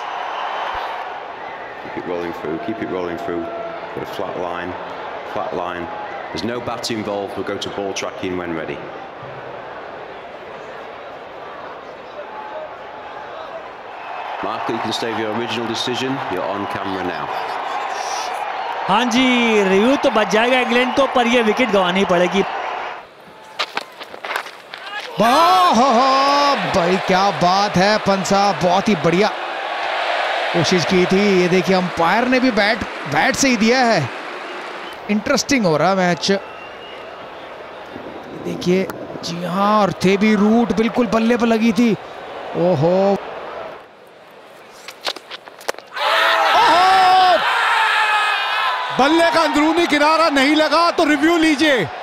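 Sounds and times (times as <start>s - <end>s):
fielders shouting appeal: 25.0s - 29.6s, 30.2s - 35.3s.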